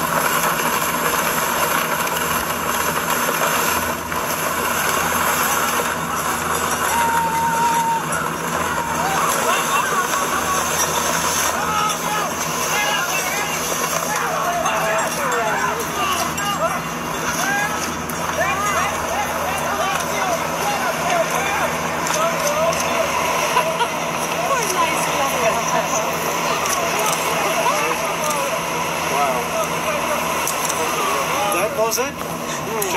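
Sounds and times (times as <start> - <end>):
steady hum and hiss: 0.0 - 32.9
indistinct voices talking: 3.8 - 32.9.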